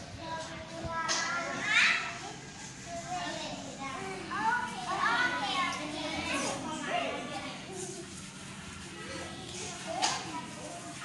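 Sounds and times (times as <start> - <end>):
young children chattering: 0.0 - 11.0.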